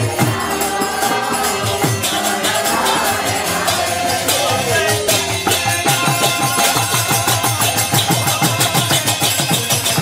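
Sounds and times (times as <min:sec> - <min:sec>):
hand drums in fast rhythm: 0:00.0 - 0:10.0.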